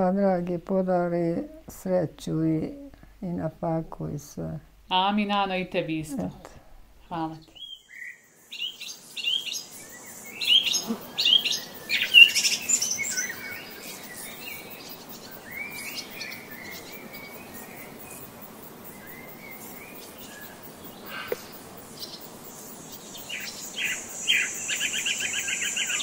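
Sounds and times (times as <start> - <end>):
steady background hiss: 0.0 - 26.0
small birds chirping: 4.2 - 26.0.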